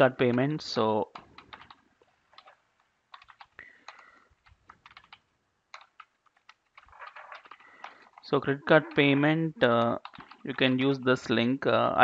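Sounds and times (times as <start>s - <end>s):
typing on a keyboard: 1.1s - 8.2s, 9.8s - 10.8s.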